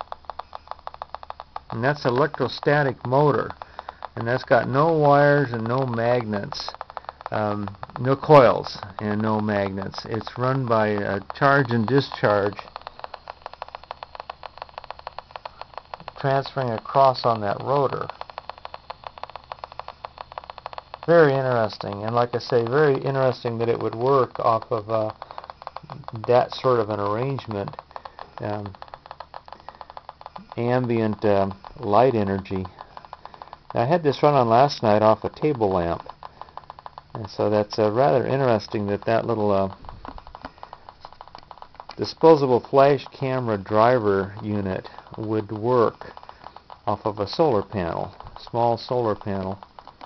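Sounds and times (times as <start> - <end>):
rapid static clicks on radio: 0.0 - 50.0.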